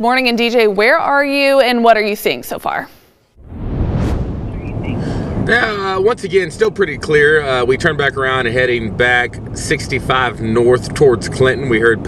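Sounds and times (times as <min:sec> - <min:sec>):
road and engine noise in car: 0:04.6 - 0:12.0.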